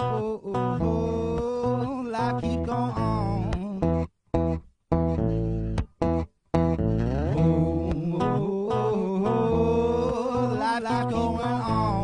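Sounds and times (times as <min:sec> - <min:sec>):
layered electric guitar music: 0:00.0 - 0:12.0.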